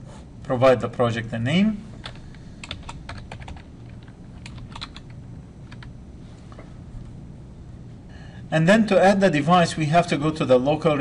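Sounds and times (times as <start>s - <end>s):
keyboard keys clicking: 2.0s - 5.9s.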